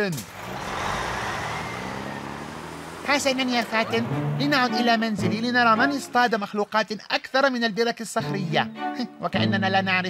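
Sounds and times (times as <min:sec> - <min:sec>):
fire engine driving away: 0:00.0 - 0:06.2
rushing noise: 0:00.1 - 0:04.8.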